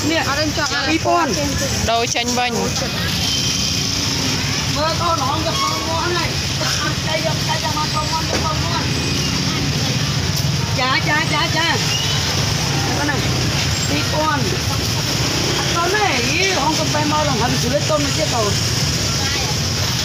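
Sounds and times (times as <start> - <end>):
people talking: 0.0 - 20.0
street traffic and motorbikes: 0.0 - 20.0.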